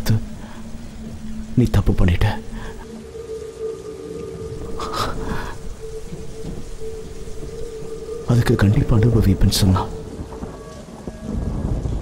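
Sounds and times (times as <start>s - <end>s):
low thunder rumbling: 0.0s - 12.0s
rain falling: 0.0s - 12.0s.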